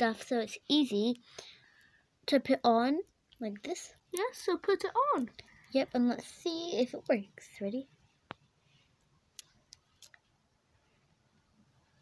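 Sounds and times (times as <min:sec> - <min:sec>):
plastic beads clicking together: 0:09.0 - 0:10.2.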